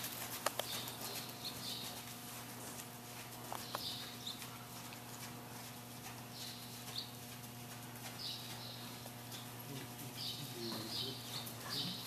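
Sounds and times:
horse hoofbeats on soft ground: 0.0 - 12.0
steady electrical hum: 0.0 - 12.0.

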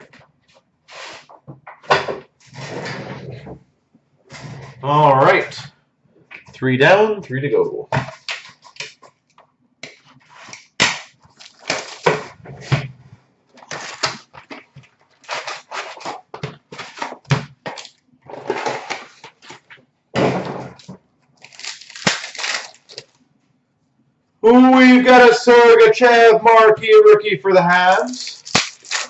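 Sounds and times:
cardboard tearing: 10.4 - 12.8, 13.6 - 19.6, 20.7 - 23.2, 27.9 - 29.0
wrappers crinkling: 11.2 - 12.4, 13.5 - 18.0, 20.8 - 23.2, 27.9 - 29.0.

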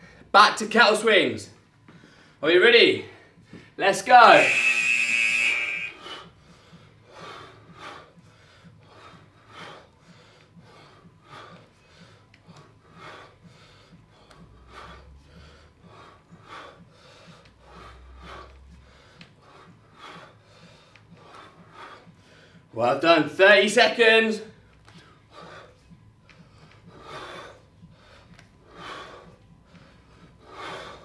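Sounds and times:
faint rhythmic breathing: 0.0 - 31.0
interval timer buzzer: 4.2 - 6.1.

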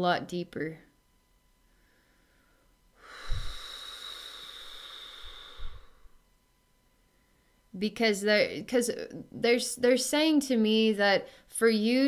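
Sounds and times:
woman breathing out: 1.7 - 6.2.

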